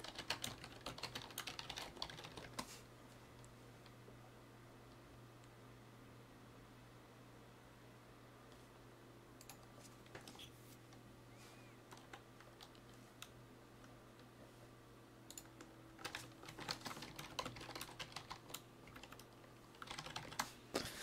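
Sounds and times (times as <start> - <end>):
typing on computer keyboard: 0.0 - 2.7, 15.3 - 20.5.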